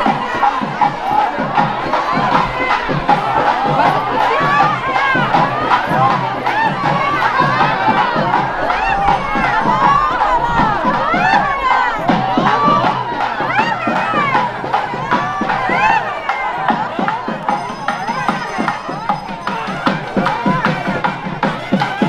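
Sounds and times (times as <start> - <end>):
crowd shouting and cheering: 0.0 - 22.0.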